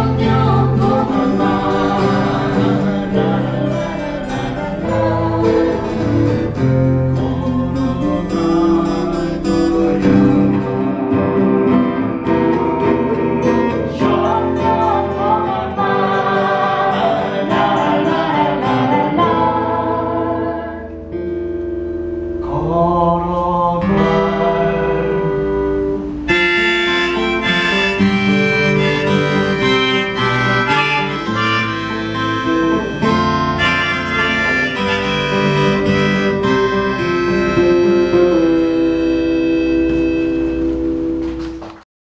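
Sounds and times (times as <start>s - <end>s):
person singing: 0.0s - 21.0s, 22.4s - 40.0s
acoustic guitars playing: 0.0s - 41.8s.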